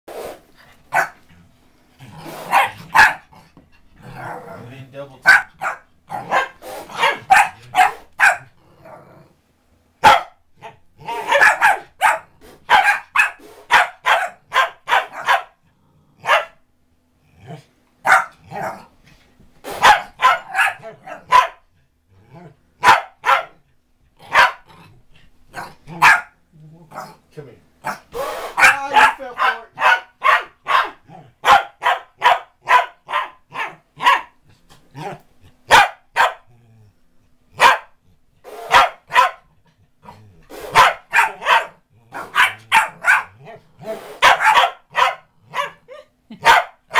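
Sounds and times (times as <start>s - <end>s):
dog barking: 0.9s - 1.2s, 2.4s - 3.3s, 5.2s - 8.5s, 10.0s - 10.4s, 11.1s - 15.6s, 16.2s - 16.6s, 18.0s - 18.8s, 19.8s - 21.6s, 22.8s - 23.6s, 24.3s - 24.7s, 25.6s - 26.4s, 27.8s - 34.4s, 35.7s - 36.5s, 37.6s - 38.0s, 38.6s - 39.5s, 40.7s - 43.6s, 44.2s - 46.9s
person laughing: 45.9s - 46.5s.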